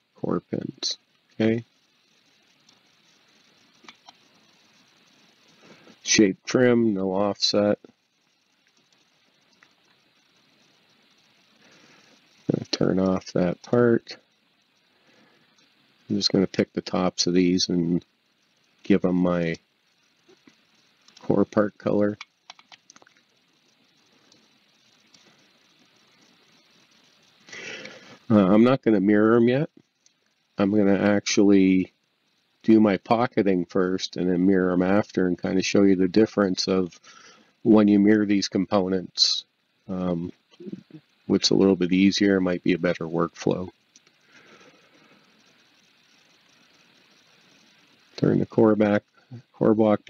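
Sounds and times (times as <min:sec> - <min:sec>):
computer mouse clicks: 0:02.5 - 0:04.7, 0:22.2 - 0:27.2.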